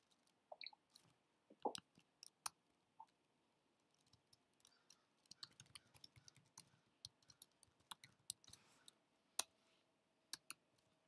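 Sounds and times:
computer keyboard typing: 4.0 - 8.6.

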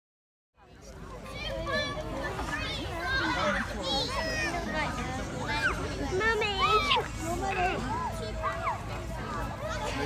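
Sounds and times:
children and adults talking: 0.6 - 10.0.

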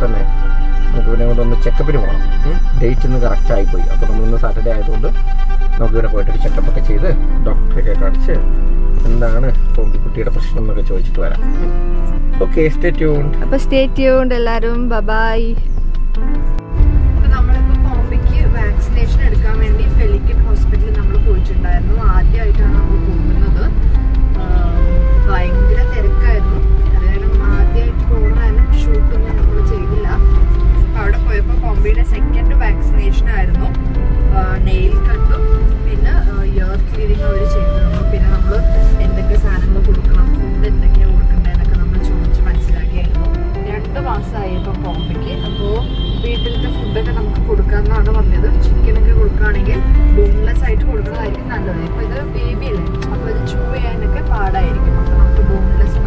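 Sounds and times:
voice or music: 0.0 - 11.5, 12.1 - 15.7, 16.6 - 56.0
car engine and road rumble: 0.0 - 56.0.

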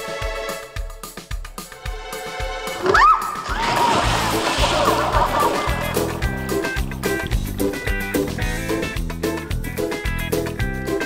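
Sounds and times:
background music: 0.0 - 11.0
big splash into water: 3.4 - 7.5.

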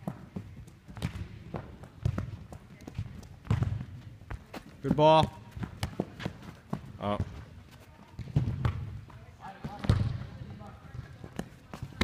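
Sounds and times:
balls kicked on turf: 0.0 - 12.0.

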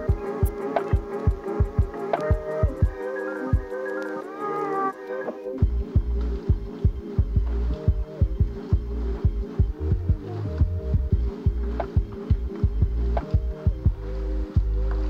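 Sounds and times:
music with pulsing bass beat: 0.0 - 15.0.

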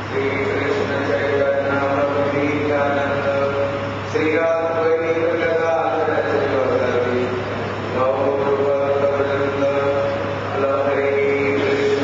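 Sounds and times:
devotional chanting: 0.0 - 12.0
steady low hum: 0.0 - 12.0.

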